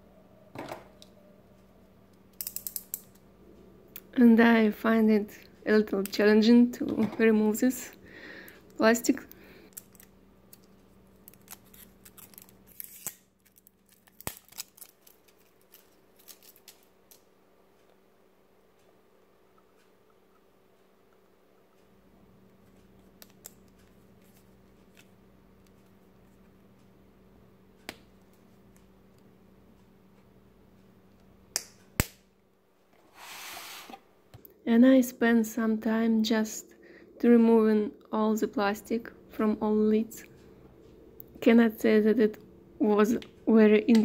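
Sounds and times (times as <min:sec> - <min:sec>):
plastic shrink wrap crinkling: 0:09.7 - 0:17.2.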